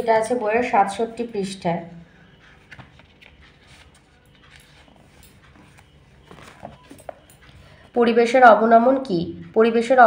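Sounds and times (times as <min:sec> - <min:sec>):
woman speaking: 0:00.0 - 0:02.1, 0:08.0 - 0:10.0
paper rustling and tapping: 0:02.5 - 0:07.7.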